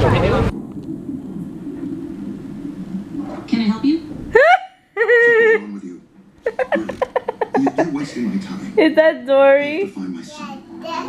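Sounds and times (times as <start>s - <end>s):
film soundtrack on television: 0.0s - 4.9s, 5.6s - 11.0s.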